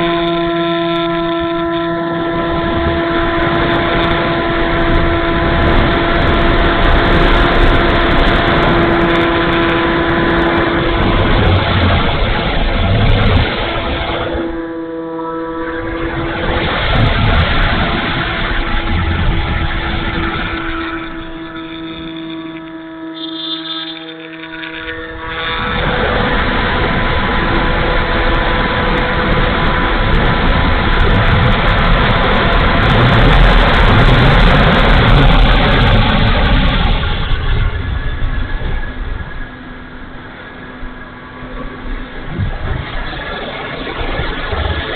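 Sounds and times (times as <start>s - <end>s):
electric motor and propeller whine: 0.0s - 44.9s
wind rushing over camera: 1.1s - 14.8s, 15.6s - 44.9s.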